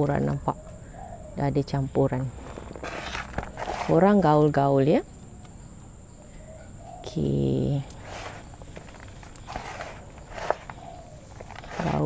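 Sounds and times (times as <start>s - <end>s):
hands rustling gritty soil: 2.3s - 4.6s, 7.9s - 12.0s.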